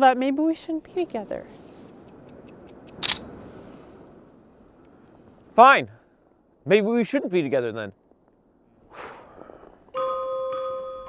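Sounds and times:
camera shutter firing: 2.9 - 3.3.

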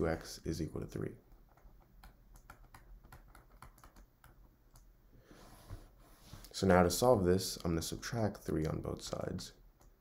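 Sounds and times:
stylus tapping on a tablet: 1.4 - 4.9.

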